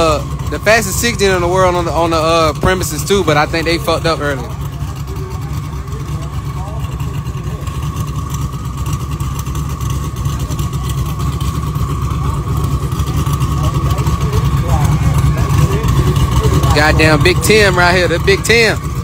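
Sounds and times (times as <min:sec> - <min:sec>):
car engine idling with deep rumble: 0:00.0 - 0:19.0.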